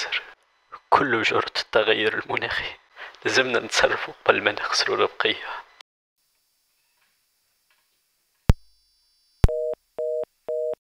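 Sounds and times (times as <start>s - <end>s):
telephone busy signal beeps: 9.4s - 10.8s.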